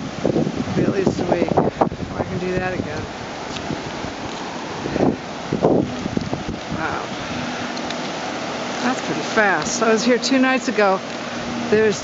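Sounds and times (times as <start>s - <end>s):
floodwater rushing over road: 0.0s - 12.0s
wind buffeting microphone: 0.0s - 12.0s.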